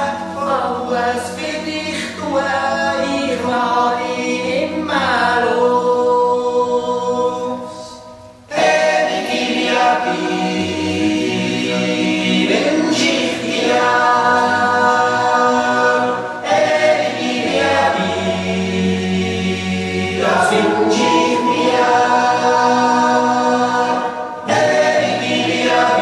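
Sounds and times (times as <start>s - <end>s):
choir singing sustained chords: 0.0s - 26.0s.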